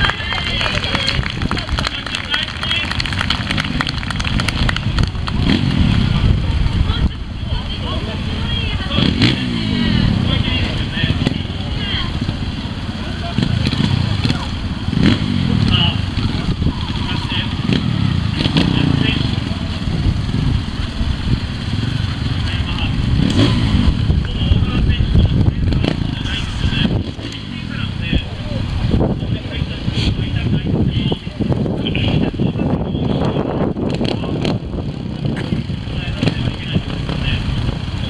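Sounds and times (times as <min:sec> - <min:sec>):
crowd chatter: 0:00.0 - 0:38.0
motorcycle engine revving: 0:00.0 - 0:38.0.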